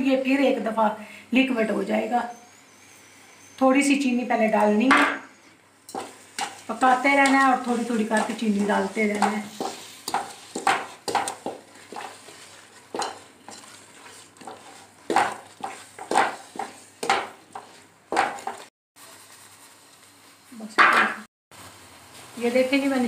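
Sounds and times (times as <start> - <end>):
wooden spatula scraping a steel pot: 4.6 - 19.4.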